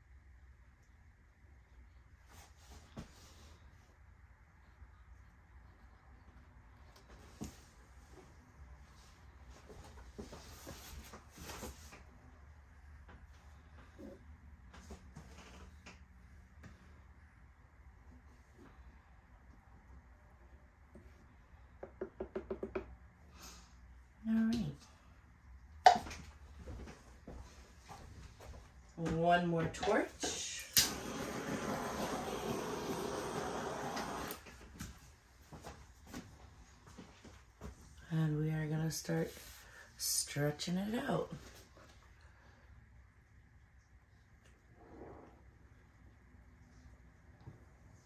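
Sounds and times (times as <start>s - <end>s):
torch flame hissing: 30.7s - 34.5s.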